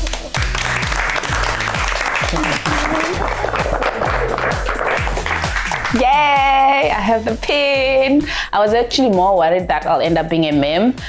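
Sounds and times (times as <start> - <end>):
people clapping: 0.0 - 6.7
background music with steady beat: 0.0 - 11.0.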